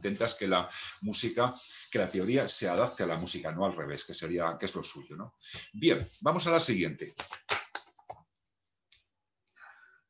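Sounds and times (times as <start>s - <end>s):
soft hiss: 0.0s - 4.0s.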